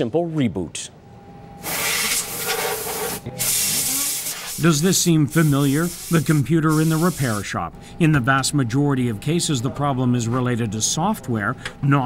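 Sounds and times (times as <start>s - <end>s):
compressed air hissing blasts: 1.6s - 7.5s.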